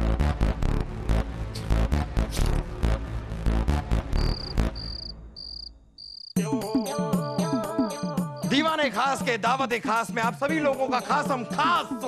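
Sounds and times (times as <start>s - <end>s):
crickets chirping: 4.2s - 6.4s.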